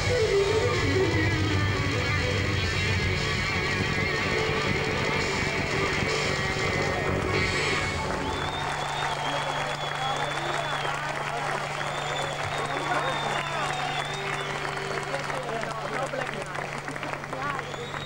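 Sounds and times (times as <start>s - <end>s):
live band playing: 0.0s - 8.8s
audience applauding and cheering: 0.0s - 18.0s
long high whistle: 7.9s - 15.2s, 17.6s - 18.0s.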